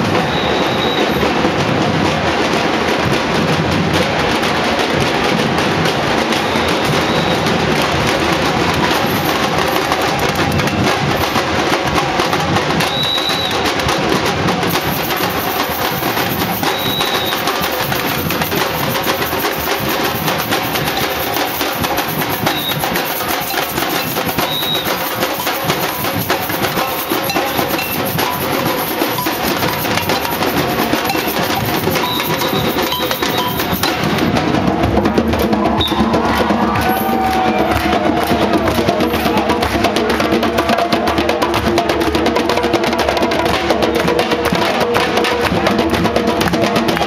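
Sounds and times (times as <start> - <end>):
drums: 0.0 - 47.0
wood block strikes: 6.3 - 34.6
short high-pitched notes: 14.7 - 34.1.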